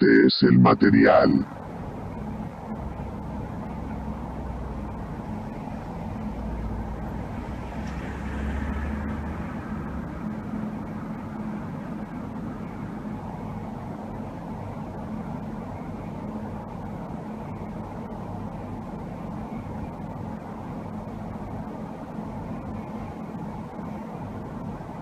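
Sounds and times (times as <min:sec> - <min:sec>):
steady low hum: 0:00.0 - 0:25.0.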